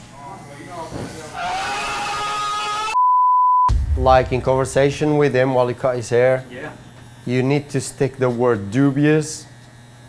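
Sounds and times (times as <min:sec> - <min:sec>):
electric hair clippers buzzing: 0:06.8 - 0:08.0, 0:08.6 - 0:10.0.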